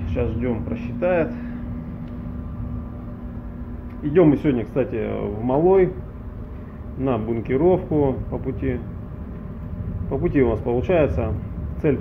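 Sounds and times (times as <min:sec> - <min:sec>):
ship machinery rumble and hum: 0:00.0 - 0:12.0.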